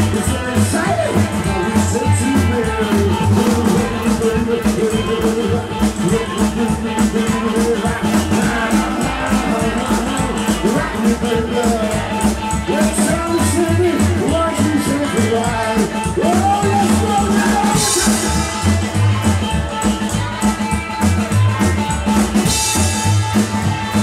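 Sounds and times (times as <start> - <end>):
drum shuffle: 0.0 - 24.0
guitars: 0.0 - 24.0
harmonica: 0.0 - 24.0
upright bass walking line: 0.0 - 24.0.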